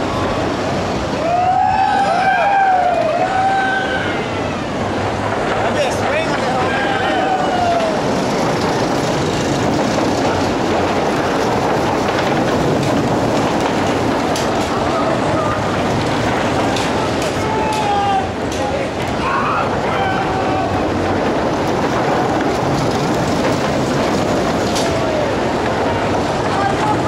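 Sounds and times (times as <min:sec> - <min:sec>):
steady rushing noise: 0:00.0 - 0:27.0
people whooping and yelling: 0:01.1 - 0:05.2, 0:06.4 - 0:08.4, 0:16.8 - 0:21.2.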